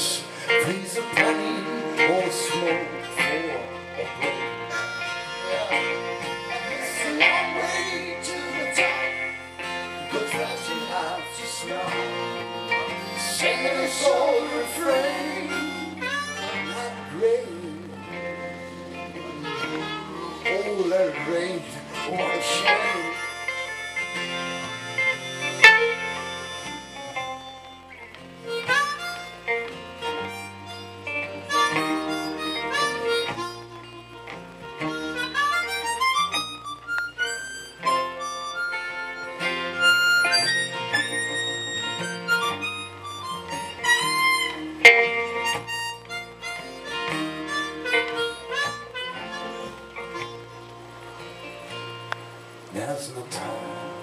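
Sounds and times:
electric guitar accompaniment: 0.0 - 54.0
harmonica solo: 0.0 - 54.0.

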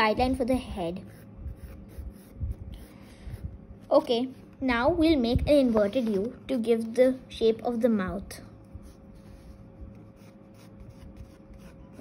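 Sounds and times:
faint steady hum: 0.0 - 12.0
pencil scratching on paper: 1.0 - 3.5, 8.8 - 12.0.

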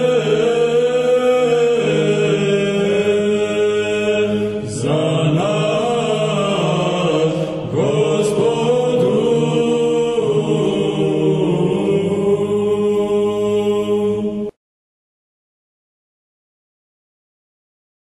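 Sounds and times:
voices chanting a melody: 0.0 - 14.6.

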